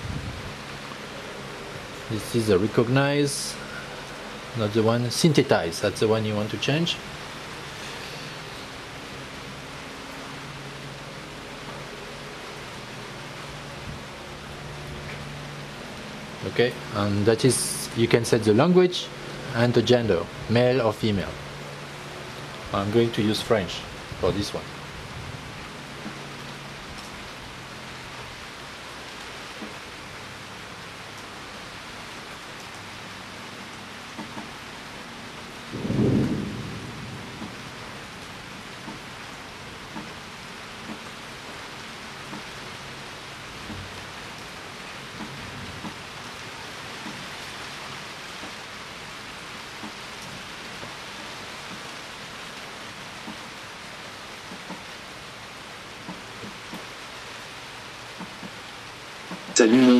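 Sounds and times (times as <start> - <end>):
room noise hiss: 0.0 - 59.9.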